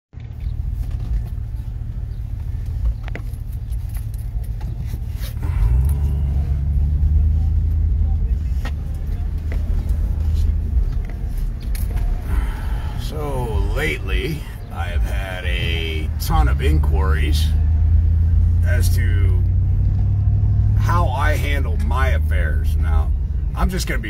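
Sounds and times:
vehicle engine and road rumble: 0.1 - 24.0.

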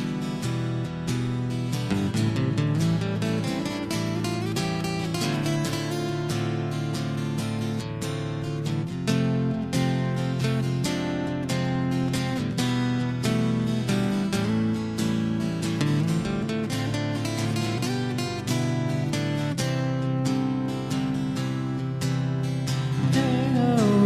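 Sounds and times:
strummed acoustic guitar chords: 0.0 - 24.0.

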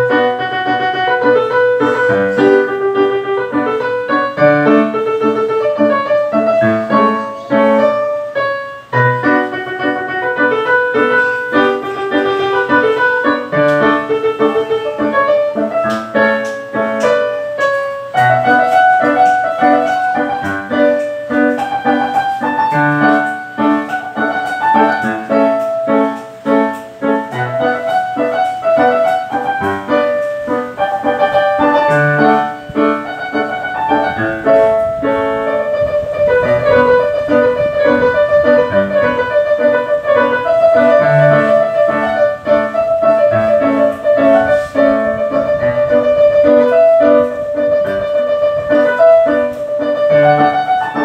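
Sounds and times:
piano music: 0.0 - 51.0.

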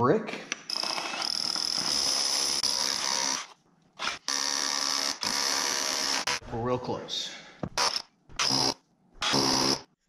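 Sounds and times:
power drill boring into concrete: 7.8 - 9.9.

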